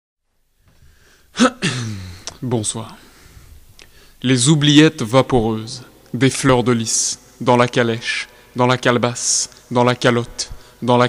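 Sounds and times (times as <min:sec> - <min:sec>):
man sneezing: 0:01.3 - 0:02.3
man speaking: 0:01.4 - 0:03.2, 0:04.2 - 0:11.0.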